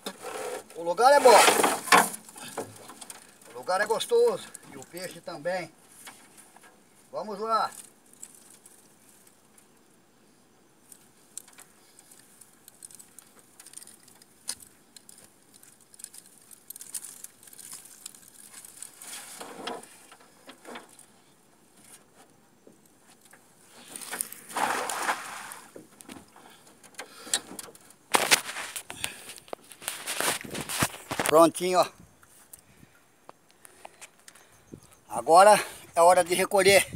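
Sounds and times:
net mesh rustling: 11.9 - 21.2.

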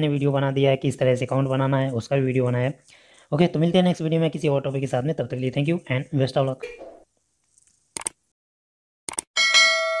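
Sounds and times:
bell notification chime: 9.4 - 10.0.

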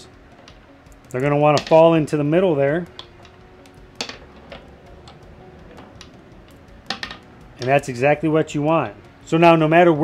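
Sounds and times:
marbles clicking on wooden floor: 0.4 - 2.0, 2.8 - 7.9
marbles rolling: 0.4 - 2.0, 2.8 - 8.0.

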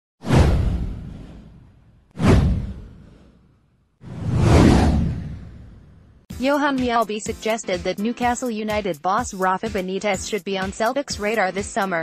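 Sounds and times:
whoosh with deep rumble: 0.2 - 6.3.

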